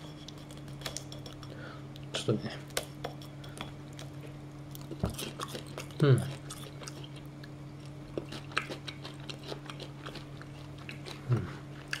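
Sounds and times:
steady low hum: 0.0s - 12.0s
crunchy chewing and biting: 3.9s - 12.0s
person humming: 11.2s - 11.6s.

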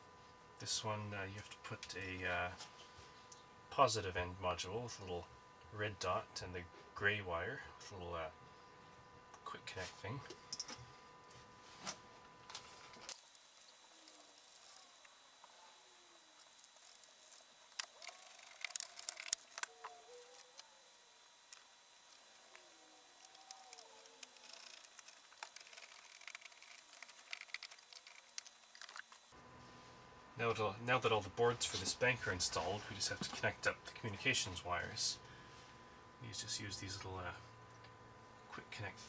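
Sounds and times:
clicks and handling noises: 16.4s - 20.8s.

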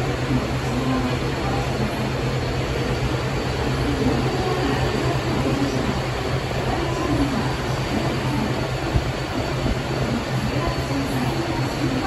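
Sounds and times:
low rumble of approaching train: 0.0s - 12.0s.

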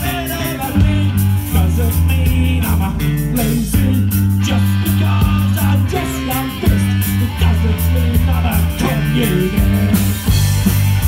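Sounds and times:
punk rock band playing live: 0.0s - 11.0s.

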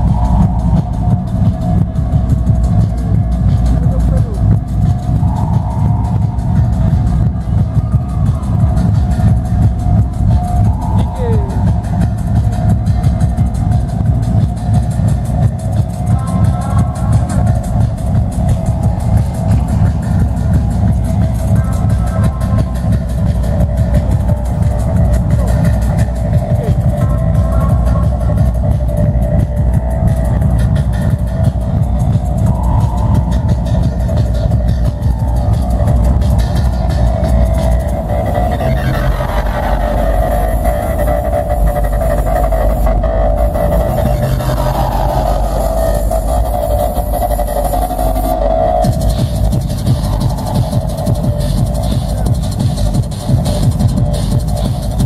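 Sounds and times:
electronic dance music: 0.0s - 55.0s.

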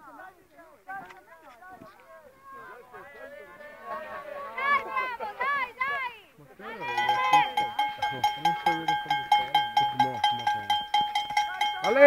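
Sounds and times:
voices: 0.0s - 12.0s
loud shout: 2.4s - 7.6s
cowbell clanging: 6.7s - 12.0s.

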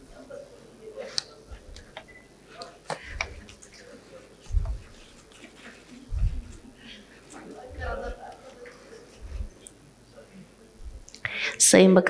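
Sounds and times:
faint voices: 0.0s - 12.0s
dull low thumps: 4.5s - 4.9s, 6.1s - 6.6s, 9.2s - 9.5s, 10.8s - 11.1s.

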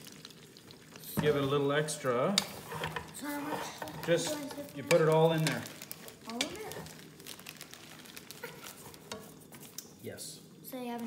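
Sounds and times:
faint sizzle: 0.0s - 11.0s.

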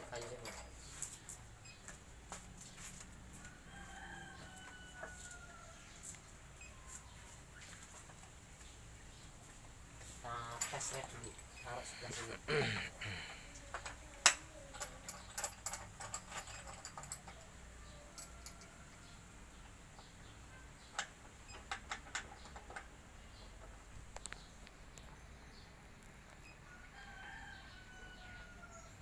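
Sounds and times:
rooster crowing: 3.3s - 6.2s, 26.6s - 29.0s
metal parts clicking and clinking: 13.6s - 17.5s, 18.1s - 18.7s.

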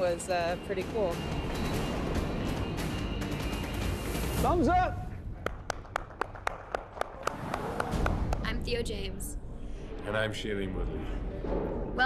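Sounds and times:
hand clapping: 5.4s - 8.5s.

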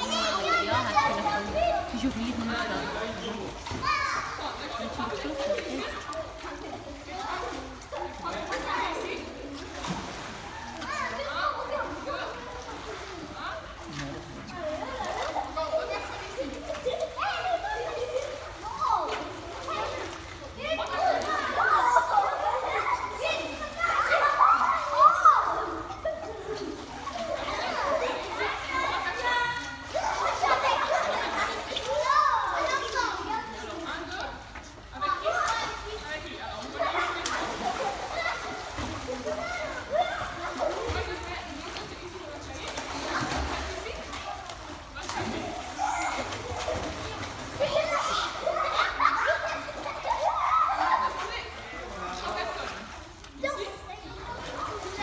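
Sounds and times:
children chattering: 0.0s - 55.0s.

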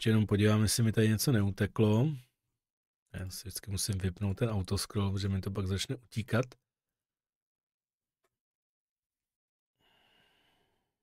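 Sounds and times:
person exhaling faintly: 9.8s - 10.9s.

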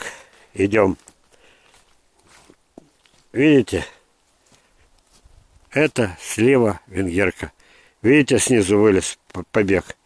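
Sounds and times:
footsteps through leafy grass: 0.0s - 6.4s.

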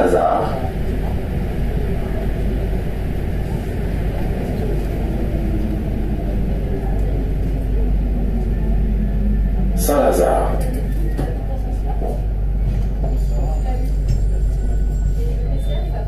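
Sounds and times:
train rumbling in tunnel: 0.0s - 16.0s.

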